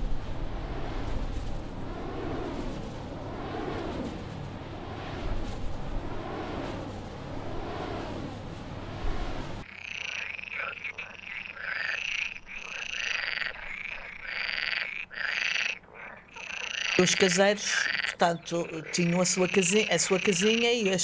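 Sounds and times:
frogs croaking: 9.6s - 21.0s.

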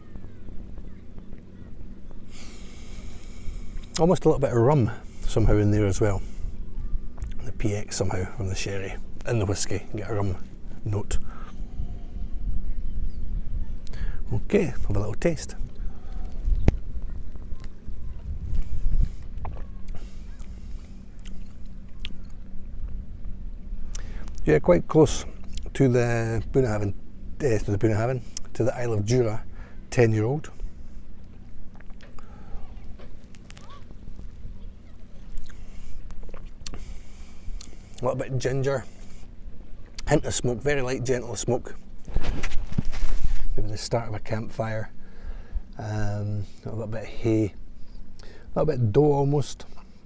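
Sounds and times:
faint bird chirps: 0.0s - 3.2s, 6.5s - 7.2s, 11.2s - 14.2s, 15.7s - 24.1s, 32.2s - 35.8s
low hum: 0.0s - 50.0s
wind buffeting microphone: 9.0s - 15.0s, 15.6s - 20.8s.

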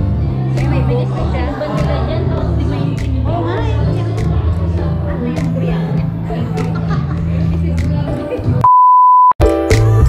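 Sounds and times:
background music: 0.0s - 8.6s, 9.4s - 10.0s
censor bleep: 8.6s - 9.4s.

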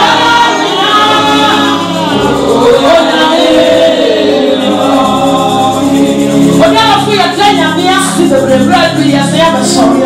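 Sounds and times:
backing singers holding notes: 0.0s - 6.6s
woman singing gospel: 0.0s - 10.0s.

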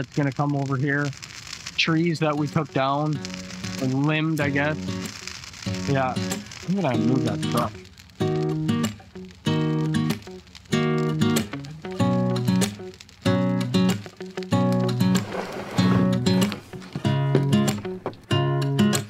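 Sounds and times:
acoustic guitar strumming chords: 7.0s - 19.0s.

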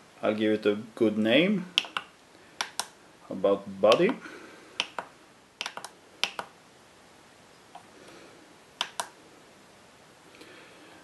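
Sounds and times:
plastic buttons clicking: 1.8s - 2.9s, 3.9s - 4.2s, 4.8s - 6.5s.

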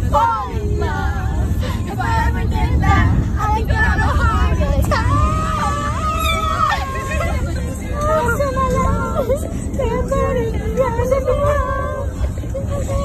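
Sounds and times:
car cabin rumble: 0.0s - 13.0s
women singing and wailing: 0.0s - 13.0s.

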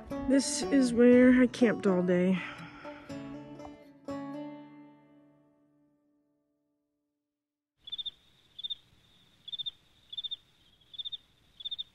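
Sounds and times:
cricket chirping: 7.8s - 11.9s
faint outdoor hiss: 7.8s - 11.9s.

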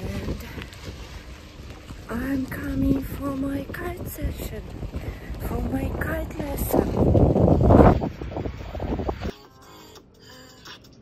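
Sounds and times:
wind buffeting microphone: 0.0s - 9.3s
background music: 6.2s - 11.0s.

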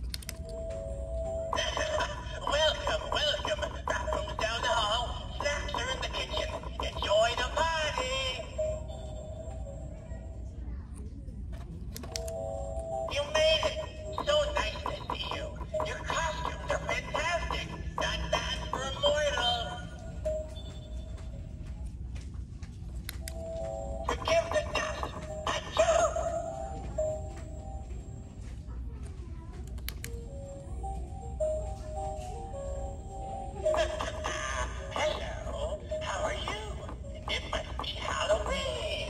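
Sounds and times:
voice from small speaker: 1.5s - 9.0s, 13.0s - 20.1s, 24.0s - 27.2s, 33.4s - 39.0s.

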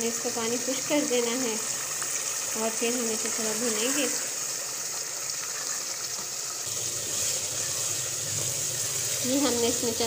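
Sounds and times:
food sizzling and bubbling in pot: 0.0s - 10.0s.

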